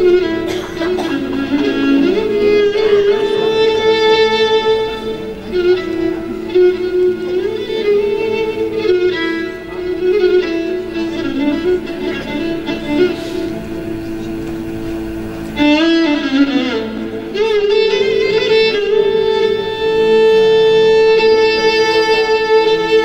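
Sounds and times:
classical music ensemble: 0.0s - 23.0s
violin slow melody: 0.0s - 23.0s.

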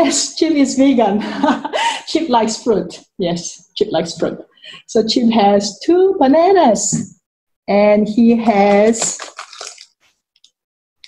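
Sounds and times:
plastic wrapper crinkling: 8.4s - 10.2s.

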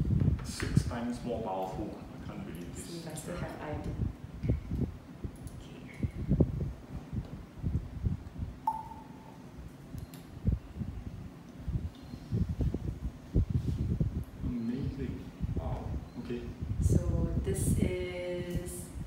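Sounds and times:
clear glass ping: 8.6s - 9.4s.

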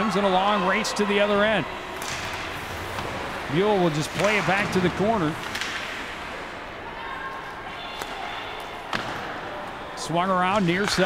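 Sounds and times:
arena ambience: 0.0s - 11.0s
hockey stick hitting puck: 2.0s - 6.3s, 8.9s - 9.4s, 10.5s - 11.0s.

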